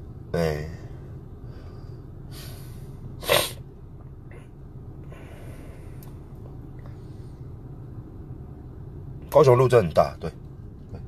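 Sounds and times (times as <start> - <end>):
car cabin hum: 0.0 - 11.0
man sneezing: 3.2 - 3.7.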